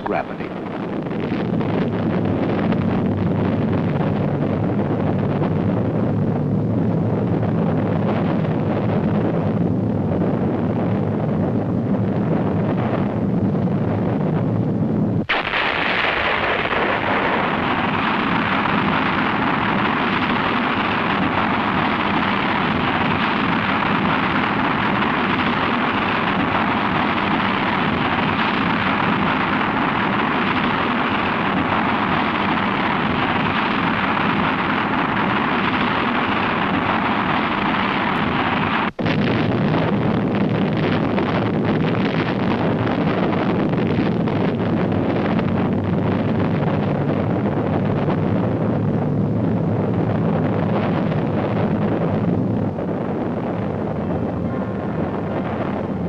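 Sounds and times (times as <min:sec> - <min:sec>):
rocket engines roaring: 0:00.0 - 0:56.0.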